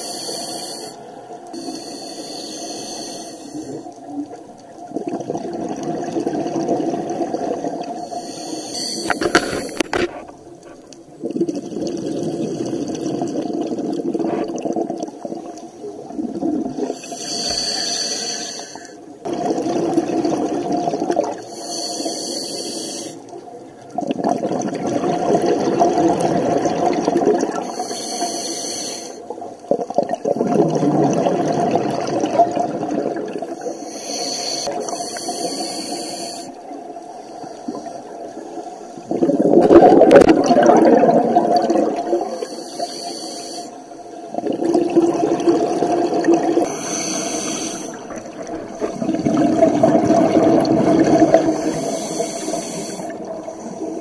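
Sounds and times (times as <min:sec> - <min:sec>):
regulator inhale hiss: 0:00.0 - 0:04.0, 0:08.0 - 0:10.1, 0:16.9 - 0:19.0, 0:21.4 - 0:23.4, 0:27.6 - 0:29.3, 0:33.6 - 0:38.2, 0:42.2 - 0:44.2, 0:46.6 - 0:48.1, 0:51.2 - 0:54.0
exhaled bubbles underwater: 0:03.4 - 0:08.4, 0:09.0 - 0:17.7, 0:19.2 - 0:21.6, 0:23.2 - 0:28.0, 0:29.2 - 0:33.8, 0:34.7 - 0:42.8, 0:44.1 - 0:54.0.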